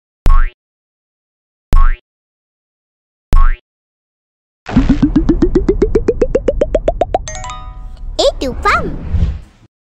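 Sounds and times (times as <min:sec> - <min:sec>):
springy blips rising in pitch: 0:04.7 - 0:07.9.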